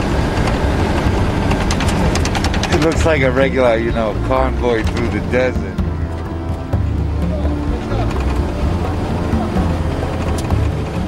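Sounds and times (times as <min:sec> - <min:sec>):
quick ticking rattle: 0:00.0 - 0:05.6
vehicle engine and road rumble: 0:00.0 - 0:11.0.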